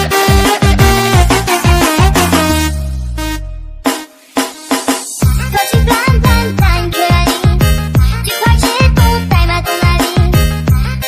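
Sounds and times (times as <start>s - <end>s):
heavy bass kick sliding down: 0.0s - 3.9s
dance remix music: 0.0s - 11.0s.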